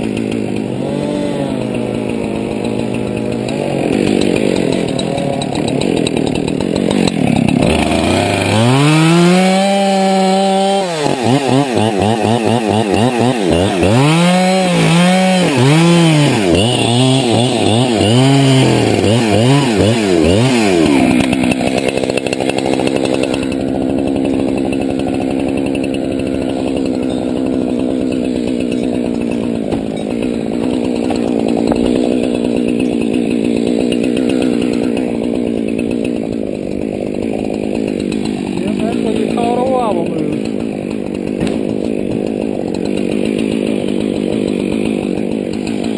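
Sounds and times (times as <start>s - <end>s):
chainsaw revving and running: 0.0s - 45.9s.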